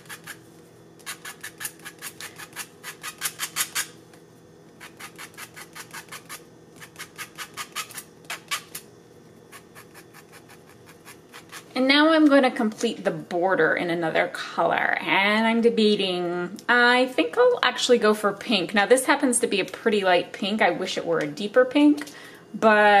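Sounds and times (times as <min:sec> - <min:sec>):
tool tip scratching fabric: 0:00.0 - 0:00.4, 0:01.0 - 0:04.0, 0:04.8 - 0:08.8, 0:09.5 - 0:11.8.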